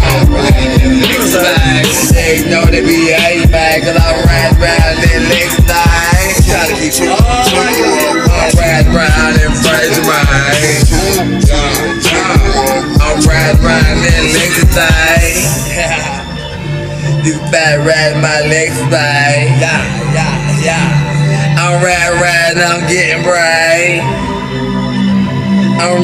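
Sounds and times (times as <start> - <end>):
trap hip hop beat: 0.0 - 26.0
wavering vocal line: 0.0 - 26.0.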